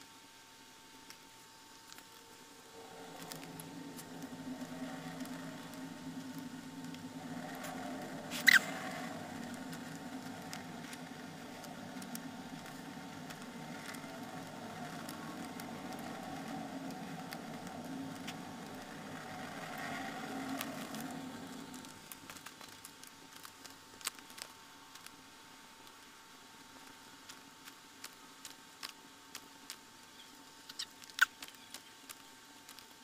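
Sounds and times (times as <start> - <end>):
steady low hum: 0.0 - 33.0
paper pieces rustling and ticking: 1.1 - 33.0.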